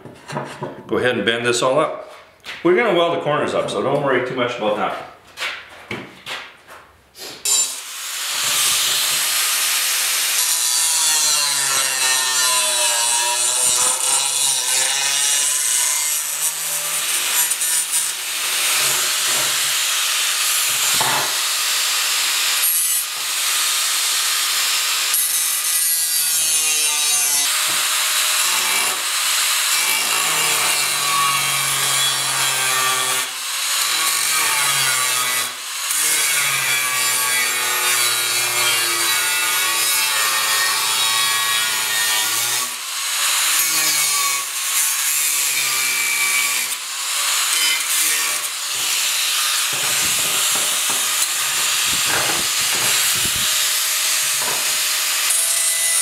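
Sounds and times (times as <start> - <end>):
angle grinder cutting steel: 7.4 - 56.0.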